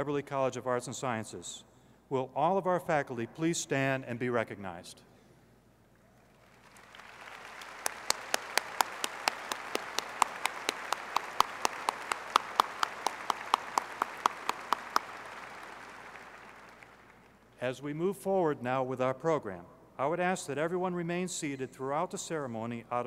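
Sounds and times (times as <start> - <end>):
large crowd applauding: 6.3 - 17.4
close loud hand claps: 6.4 - 17.4.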